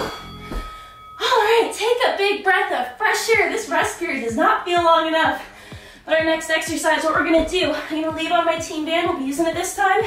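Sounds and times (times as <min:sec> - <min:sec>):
woman speaking: 0:01.2 - 0:05.5, 0:06.1 - 0:10.0
soft low thud: 0:07.2 - 0:07.8.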